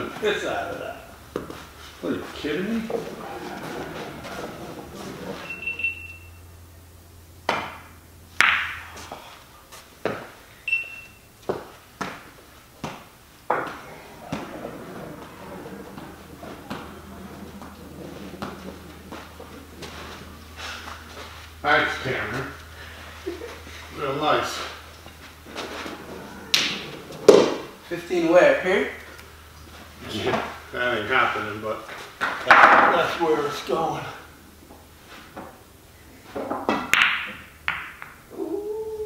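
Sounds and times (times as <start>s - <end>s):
pool balls and cue clacking: 0.0s - 6.4s, 7.4s - 9.3s, 10.0s - 39.0s.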